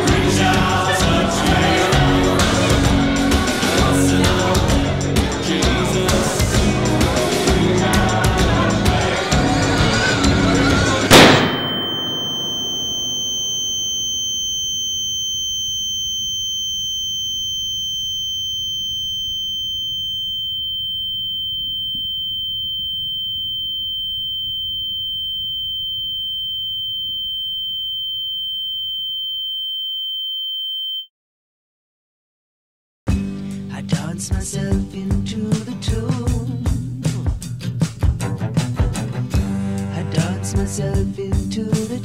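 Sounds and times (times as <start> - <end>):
balloon bursting bang: 11.1 - 13.2
higher ringing tone: 11.1 - 31.0
high-pitched ringing tone: 11.2 - 31.1.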